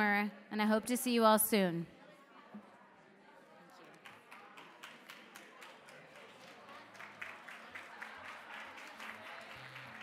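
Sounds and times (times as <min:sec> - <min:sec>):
audience clapping: 0:03.9 - 0:10.0.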